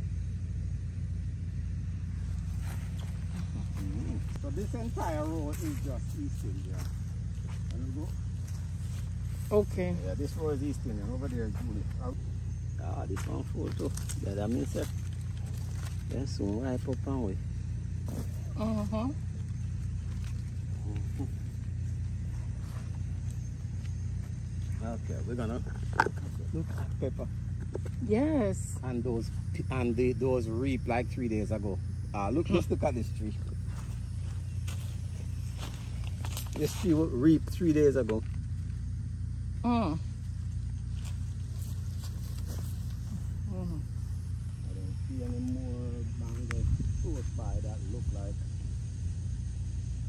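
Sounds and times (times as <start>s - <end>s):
steady low rumble: 0.0s - 50.0s.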